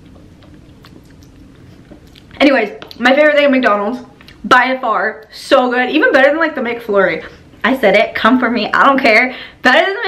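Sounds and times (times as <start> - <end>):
swallowing: 0.0 - 3.0.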